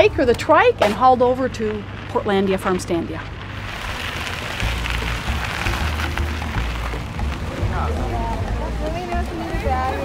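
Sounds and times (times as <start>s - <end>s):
cargo trike rolling: 0.0s - 10.0s
background music with bass: 3.3s - 10.0s.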